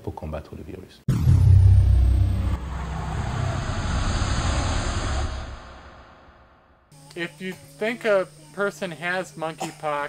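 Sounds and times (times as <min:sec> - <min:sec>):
deep rumble: 0:01.1 - 0:06.9.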